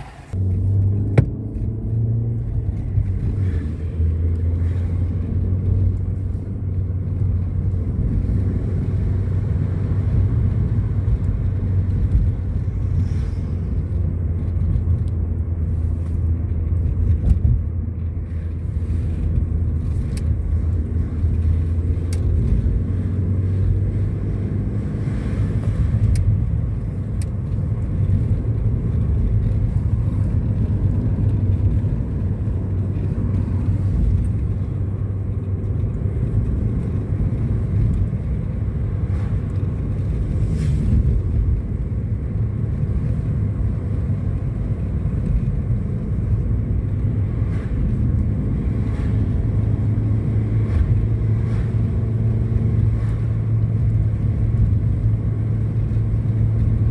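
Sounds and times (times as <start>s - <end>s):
car interior road rumble: 0.0s - 56.9s.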